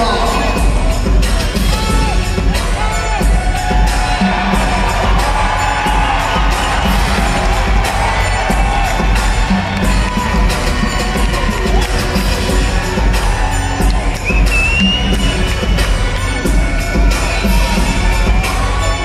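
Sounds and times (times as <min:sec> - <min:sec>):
crowd cheering and shouting: 0:00.0 - 0:19.0
music with heavy bass beat: 0:00.0 - 0:19.0.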